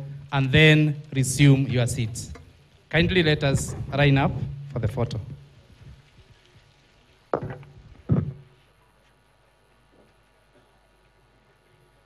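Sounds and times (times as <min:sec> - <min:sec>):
dull thumps: 0:07.3 - 0:08.4.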